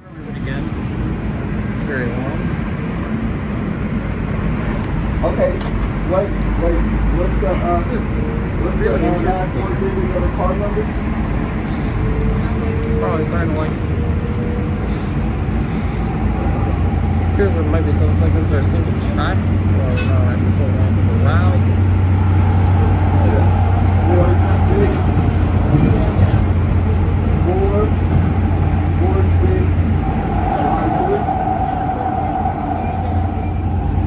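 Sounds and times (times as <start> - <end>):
indistinct passenger voices: 0.0 - 34.0
rail car rumble: 0.0 - 34.0
low hum: 9.8 - 34.0.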